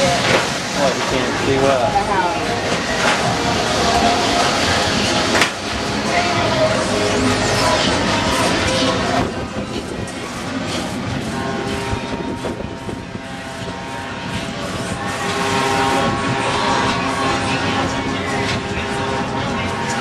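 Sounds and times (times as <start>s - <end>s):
crowd voices: 0.0s - 20.0s
fairground machinery: 0.0s - 20.0s.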